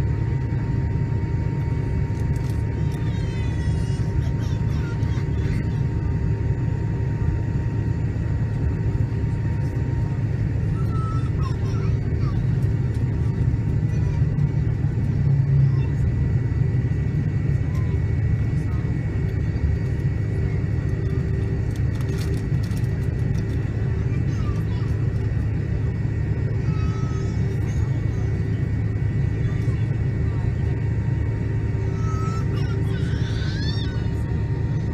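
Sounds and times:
airplane cabin rumble: 0.0 - 34.9
faint steady whine: 0.0 - 34.9.

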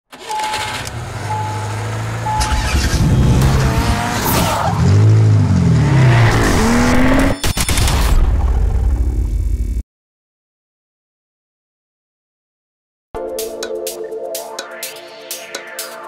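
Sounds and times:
car engine revving: 0.2 - 7.4
short beeps: 0.3 - 1.7, 2.3 - 2.9
tire squeal: 2.3 - 5.0.

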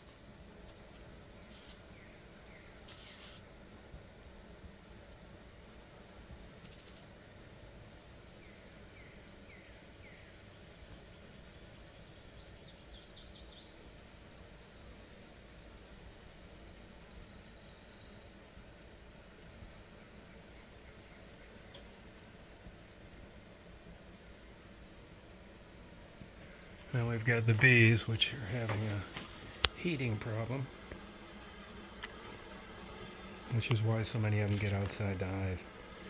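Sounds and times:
low background noise: 0.0 - 36.0
distant songbird calls: 8.4 - 14.6, 16.2 - 18.4.

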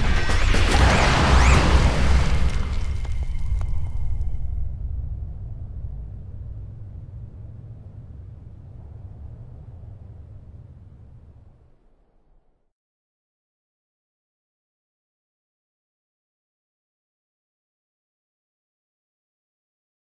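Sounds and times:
explosion blast with low rumble: 0.0 - 12.4.

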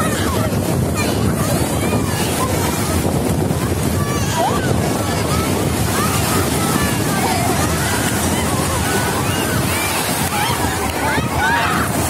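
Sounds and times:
sea surf breaking: 0.0 - 12.0
wind buffeting microphone: 0.0 - 12.0.

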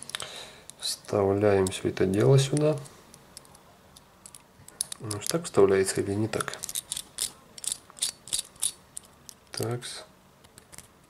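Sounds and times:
small metal clicks and scrapes: 4.2 - 5.6, 6.3 - 9.8.

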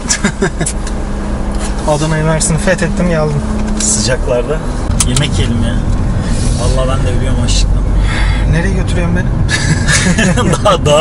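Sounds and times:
men laughing: 0.0 - 0.8, 9.4 - 11.0
car engine hum: 0.0 - 11.0
men talking: 1.6 - 11.0.

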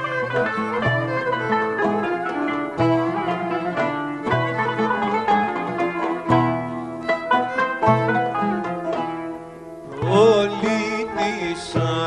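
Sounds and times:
accordion: 0.0 - 12.0
hand drum: 0.0 - 12.0
plucked strings melody: 0.0 - 12.0
violin: 0.0 - 12.0.

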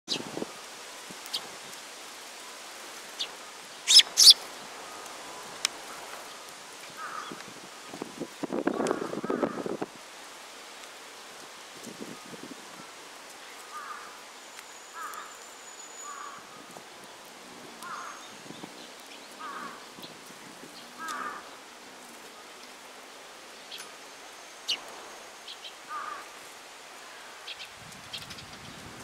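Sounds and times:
sparrows chirping: 3.9 - 4.4.

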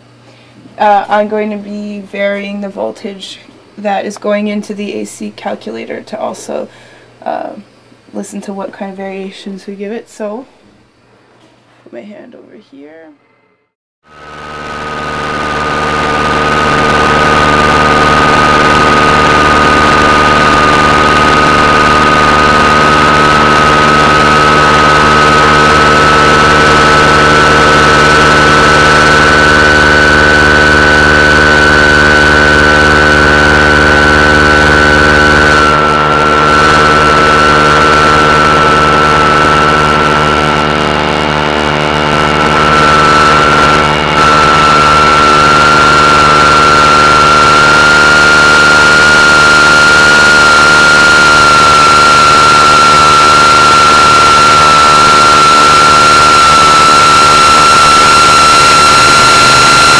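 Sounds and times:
high whine rising in pitch: 13.4 - 59.9
radio interference buzz: 14.1 - 59.9.

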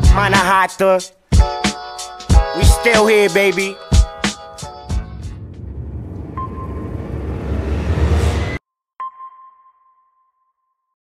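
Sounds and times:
heavy low rumble: 4.6 - 8.6.

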